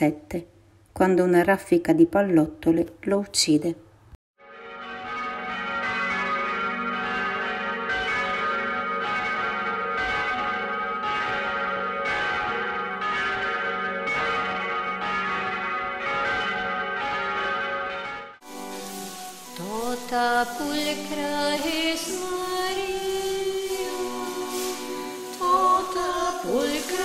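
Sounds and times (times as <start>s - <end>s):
church bells ringing: 4.4s - 27.0s.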